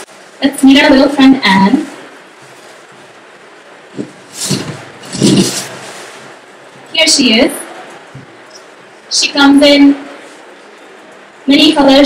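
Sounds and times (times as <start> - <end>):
bag rustling and scraping: 2.3 - 3.2, 4.0 - 6.5.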